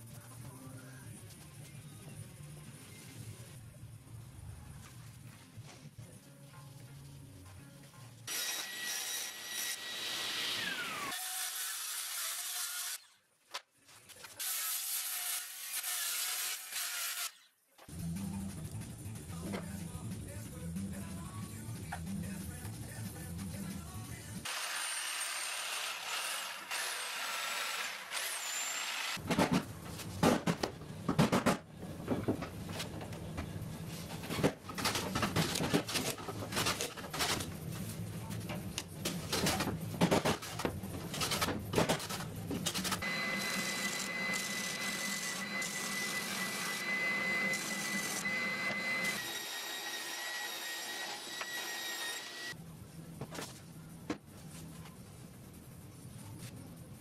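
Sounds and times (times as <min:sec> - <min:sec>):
knocks and clatter of wood: 0:29.2 - 0:33.1
power tool whining: 0:43.0 - 0:52.5.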